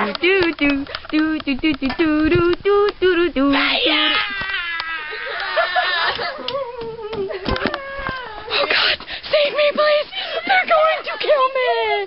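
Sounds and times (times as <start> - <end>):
girl wailing: 3.5 - 11.2.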